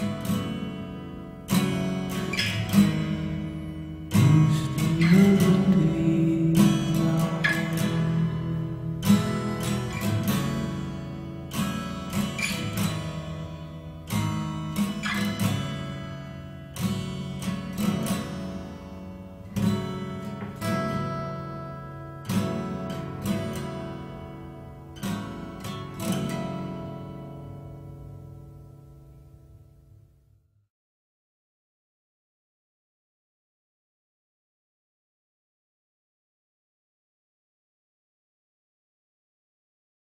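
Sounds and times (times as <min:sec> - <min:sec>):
acoustic guitar strumming chords: 0:00.0 - 0:29.9.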